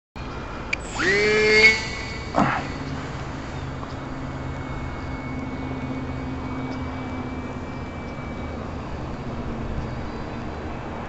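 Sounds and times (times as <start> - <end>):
electric motor and propeller whining: 0.2 - 11.0
steady background hum: 0.2 - 11.0.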